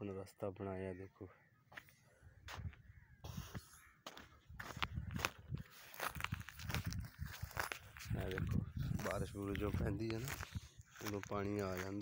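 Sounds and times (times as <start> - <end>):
footsteps on stony ground: 1.7 - 12.0.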